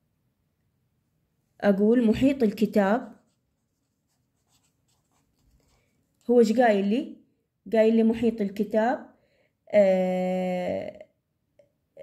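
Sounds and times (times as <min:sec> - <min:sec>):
pen scratching on paper: 0:02.7 - 0:05.9.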